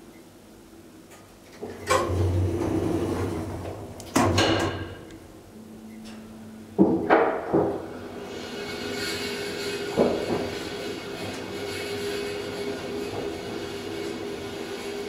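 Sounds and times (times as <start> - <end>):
elevator humming: 1.6 - 15.0.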